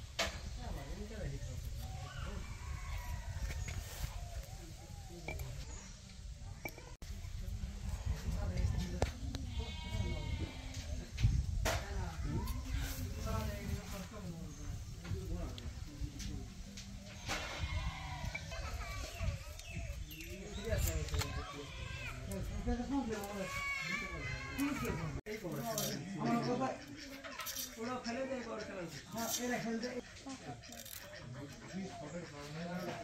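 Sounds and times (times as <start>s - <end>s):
people talking: 0.6s - 33.0s.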